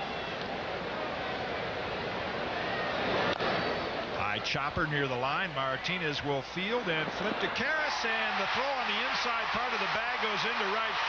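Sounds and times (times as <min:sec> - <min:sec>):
ballpark crowd noise: 0:00.0 - 0:11.0.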